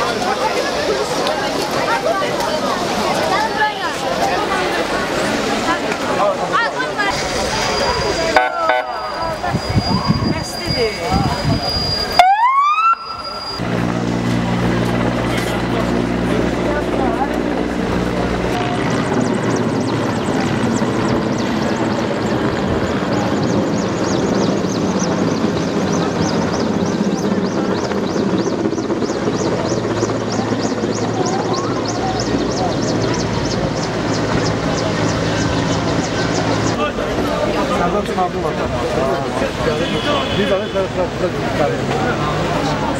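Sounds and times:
helicopter engine and rotor hum: 0:00.0 - 0:12.2, 0:13.0 - 0:42.9
onlookers talking: 0:00.0 - 0:42.9.

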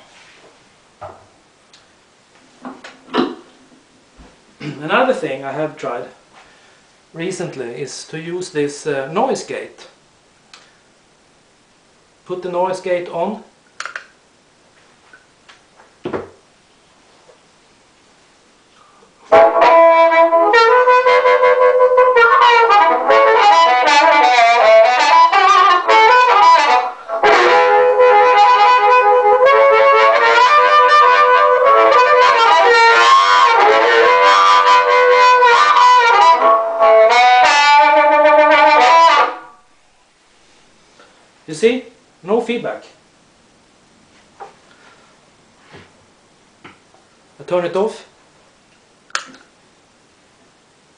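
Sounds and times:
amplified blues harmonica: 0:18.8 - 0:39.7.

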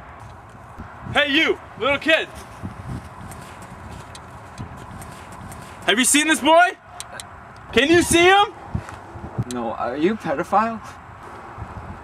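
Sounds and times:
footsteps on snow: 0:02.0 - 0:06.3.

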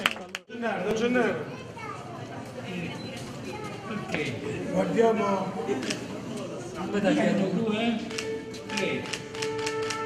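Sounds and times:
people clapping: 0:00.0 - 0:00.5.

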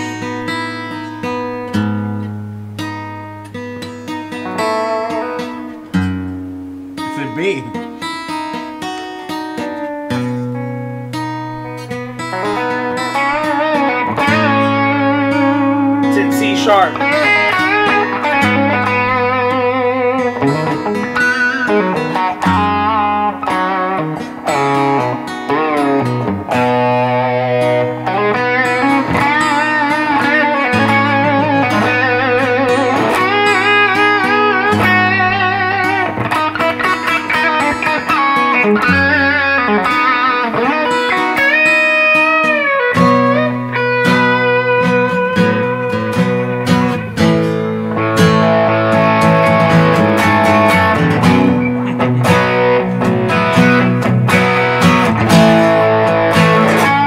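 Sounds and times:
acoustic guitar: 0:00.0 - 0:57.0
electric guitar riff: 0:00.0 - 0:57.0.

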